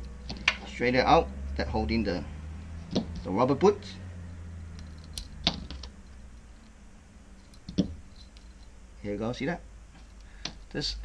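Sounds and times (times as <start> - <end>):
steady low hum: 0.0 - 11.0
metal parts and tools clicking: 4.8 - 6.8, 7.4 - 8.7.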